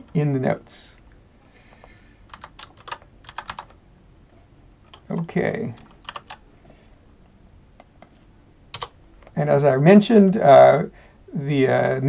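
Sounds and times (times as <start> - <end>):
keyboard typing clicks: 2.3 - 3.8, 4.9 - 6.4, 7.8 - 8.9.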